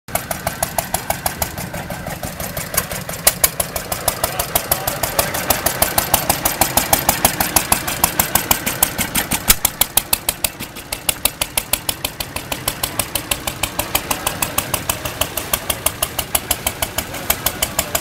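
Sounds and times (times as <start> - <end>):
sharp steady clicking: 0.1 - 18.0
stationary gas engines running: 0.1 - 18.0.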